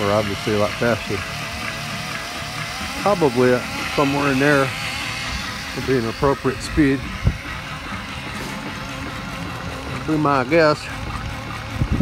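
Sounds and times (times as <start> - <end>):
drill motor whine: 0.0 - 12.0
low throbbing rumble: 0.0 - 12.0.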